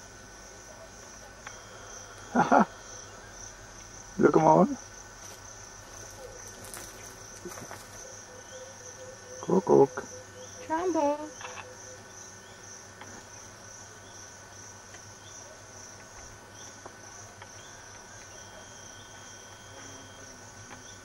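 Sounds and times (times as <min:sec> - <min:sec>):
crickets trilling: 0:00.0 - 0:21.0.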